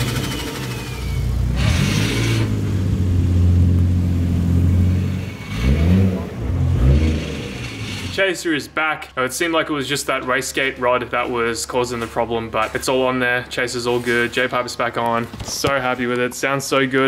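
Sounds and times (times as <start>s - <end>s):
car engine revving: 0.0s - 8.2s.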